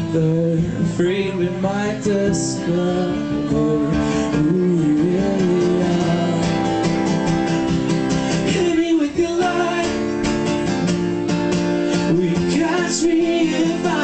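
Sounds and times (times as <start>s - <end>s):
man singing: 0.0s - 10.9s, 11.9s - 14.0s
acoustic guitar strumming: 0.0s - 14.0s.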